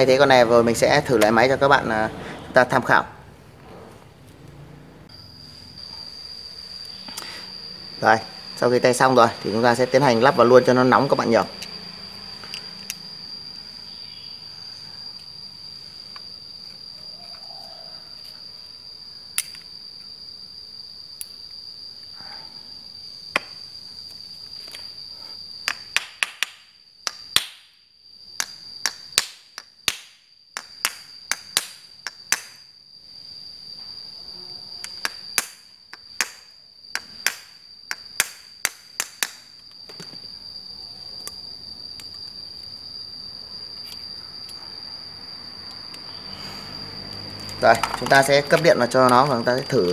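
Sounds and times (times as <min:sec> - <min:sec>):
steady high-pitched whine: 0:00.0 - 0:49.9.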